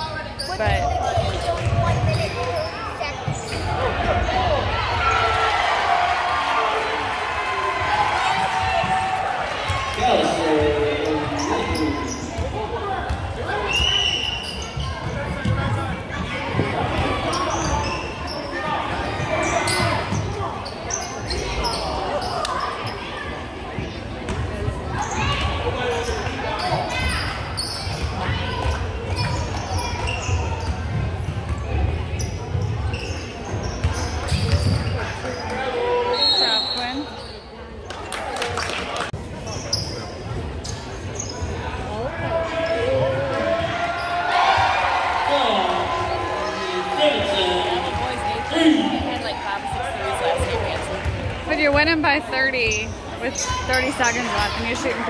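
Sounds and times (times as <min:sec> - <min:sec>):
spectators talking: 0:00.0 - 0:55.0.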